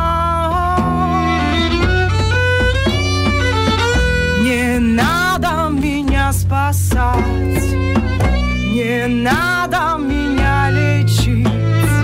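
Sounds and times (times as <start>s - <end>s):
bass guitar: 0.0s - 12.0s
violin melody with slides: 0.7s - 6.0s, 7.2s - 12.0s
djembe: 0.8s - 12.0s.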